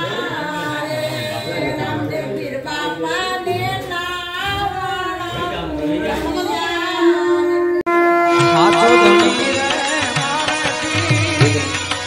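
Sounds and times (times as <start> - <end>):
women singing devotional song: 0.0 - 7.9, 8.8 - 12.0.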